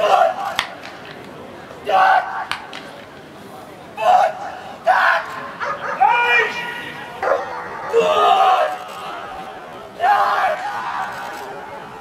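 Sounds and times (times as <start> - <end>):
man shouting: 5.9 - 7.0.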